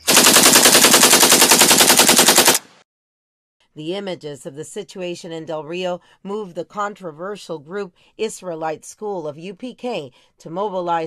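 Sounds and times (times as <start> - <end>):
automatic gunfire: 0.0 - 2.8.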